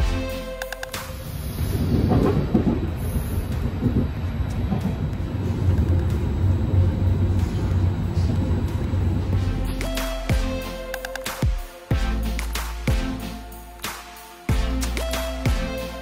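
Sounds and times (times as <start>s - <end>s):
train carriage low rumble: 0.0s - 11.0s.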